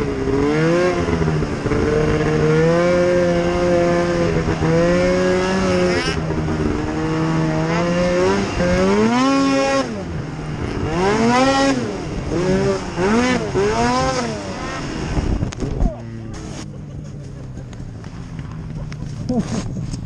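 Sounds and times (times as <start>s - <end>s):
snowmobile engine revving: 0.0s - 20.0s.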